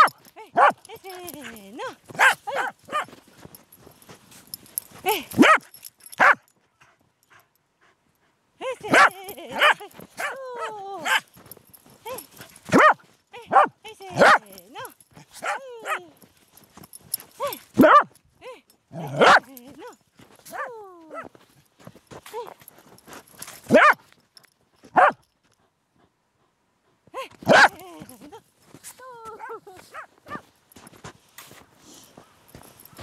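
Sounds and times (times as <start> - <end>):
dog barking excitedly: 0.0 - 3.2, 5.2 - 6.5, 8.8 - 11.3, 12.1 - 16.0, 17.4 - 18.1, 18.9 - 19.5, 23.7 - 24.0, 24.9 - 25.2, 27.4 - 27.8.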